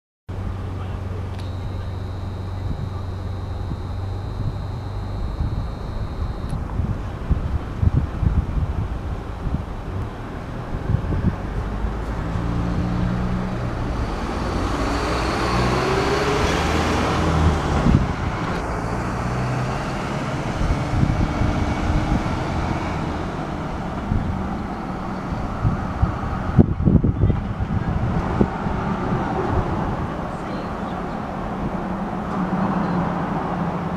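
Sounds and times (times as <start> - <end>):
low traffic hum: 0.3 - 33.9
vehicle passing: 0.4 - 8.2, 8.8 - 33.9
thin high tone: 0.6 - 6.6.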